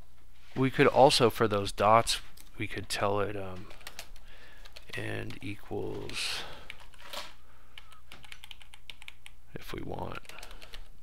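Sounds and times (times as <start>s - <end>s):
computer keyboard typing: 3.6s - 9.4s, 10.0s - 10.9s.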